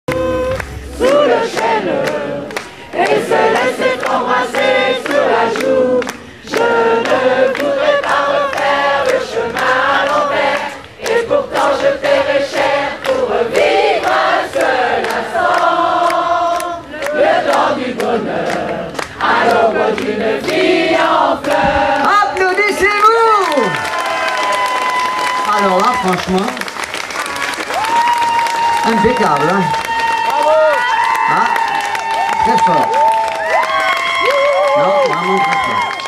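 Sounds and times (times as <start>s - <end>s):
steady beat: 0.1s - 7.3s
crowd singing together: 0.1s - 22.5s.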